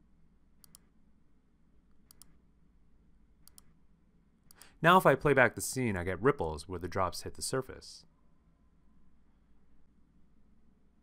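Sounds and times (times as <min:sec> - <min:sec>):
low background hum: 0:00.0 - 0:11.0
computer mouse clicks: 0:00.6 - 0:00.9, 0:02.0 - 0:02.4, 0:03.4 - 0:03.8, 0:04.5 - 0:04.8
man's voice: 0:04.8 - 0:08.0.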